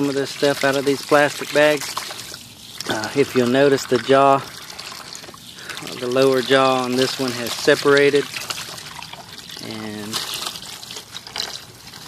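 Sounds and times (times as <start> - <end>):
hand working plastic bag in water: 0.0 - 12.0
hose water splashing into basin: 0.0 - 12.0.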